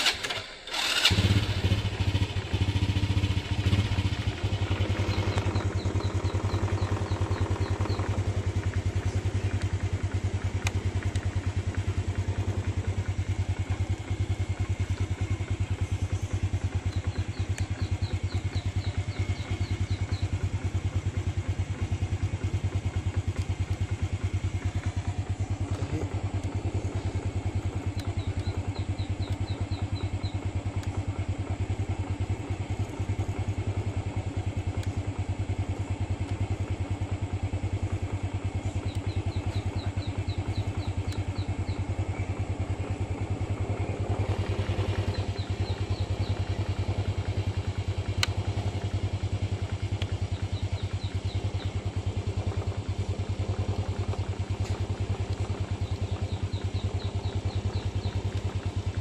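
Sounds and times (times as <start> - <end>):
motorcycle engine idling: 0.0 - 59.0
faint high chirping: 27.8 - 30.5.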